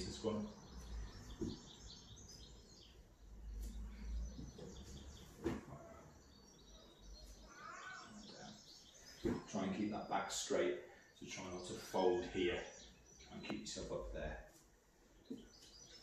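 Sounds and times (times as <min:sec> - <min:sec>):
faint birds chirping: 0:00.0 - 0:16.0.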